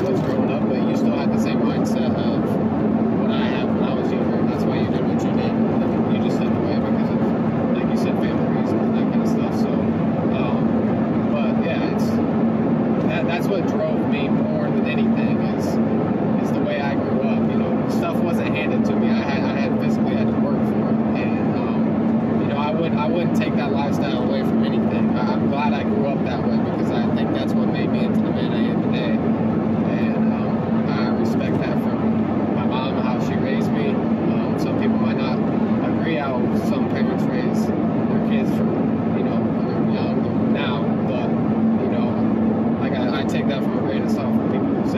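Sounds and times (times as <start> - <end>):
man talking: 0.0 - 2.6, 3.2 - 12.2, 13.0 - 15.8, 16.4 - 44.9
car engine and road drone: 0.0 - 44.9.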